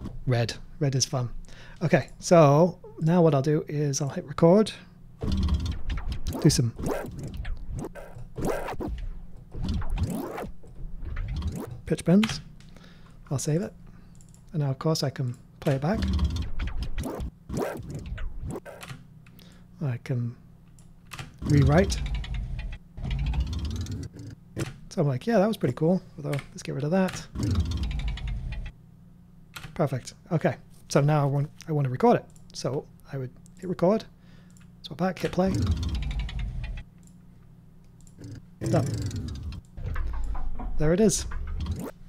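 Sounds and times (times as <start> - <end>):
low hum: 0.0 - 14.2, 15.3 - 19.6, 21.4 - 25.0, 25.7 - 29.5, 34.9 - 42.0
rapid ticking rattle: 21.4 - 24.4, 27.4 - 28.7, 35.3 - 36.8.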